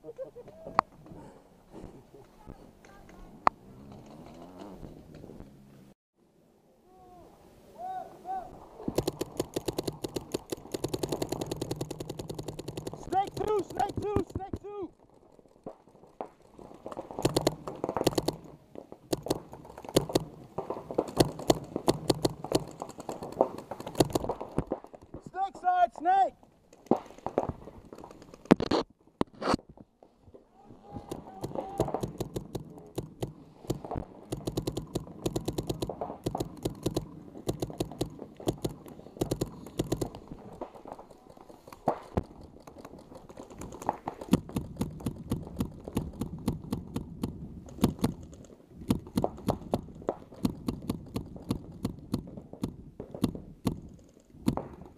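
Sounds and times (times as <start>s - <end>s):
sharp cracks: 8.8s - 25.9s, 26.6s - 29.7s, 31.0s - 54.9s
paintball markers firing: 8.9s - 14.8s, 15.7s - 25.2s, 31.1s - 54.9s.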